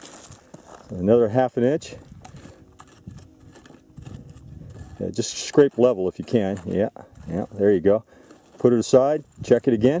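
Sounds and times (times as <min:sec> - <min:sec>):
grit and pebbles clicking: 0:00.0 - 0:10.0
hand tool scraping gravelly soil: 0:00.0 - 0:10.0.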